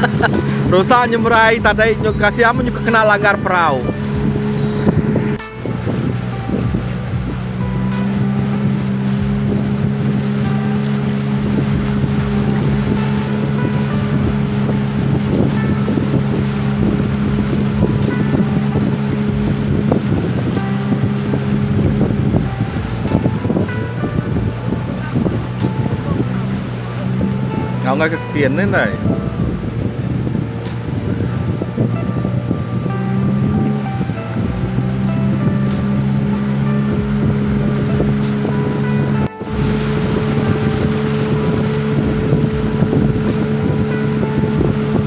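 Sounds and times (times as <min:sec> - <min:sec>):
outboard motor running: 0:00.0 - 0:45.0
water rushing along hull: 0:00.0 - 0:45.0.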